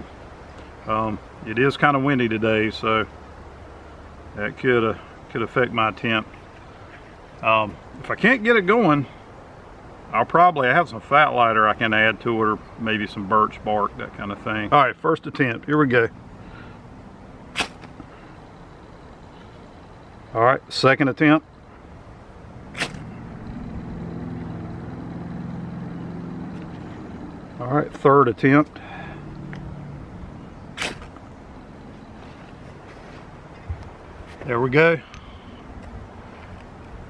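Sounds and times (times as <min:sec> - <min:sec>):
low background rush: 0:00.0 - 0:37.0
striker scraping ferrocerium rod: 0:17.6 - 0:17.9, 0:22.7 - 0:23.2.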